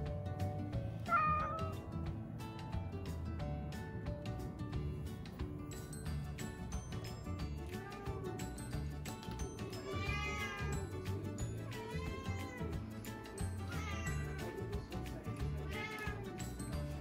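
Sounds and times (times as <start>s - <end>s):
background music with steady beat: 0.0s - 17.0s
cat meowing: 1.1s - 1.8s, 9.8s - 10.9s, 11.7s - 12.8s, 13.7s - 14.6s, 15.6s - 16.4s.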